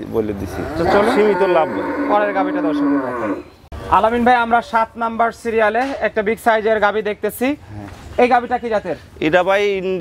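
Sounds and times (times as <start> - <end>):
cow mooing: 0.5 - 3.6.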